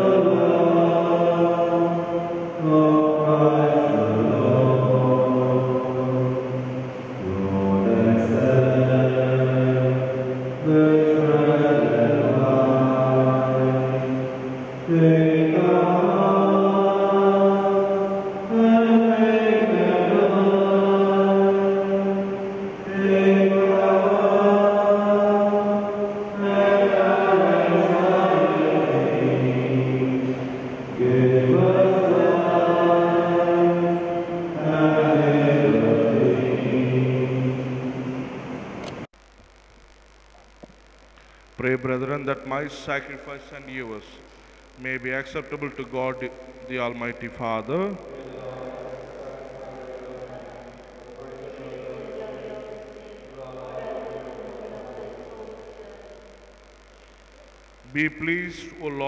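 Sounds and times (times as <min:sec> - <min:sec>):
choir singing a slow hymn: 0:00.0 - 0:38.8, 0:48.1 - 0:56.2.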